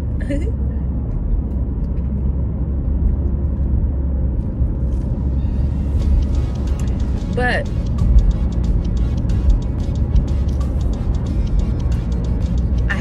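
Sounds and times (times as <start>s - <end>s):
car cabin road and engine rumble: 0.0s - 13.0s
background music: 5.4s - 13.0s.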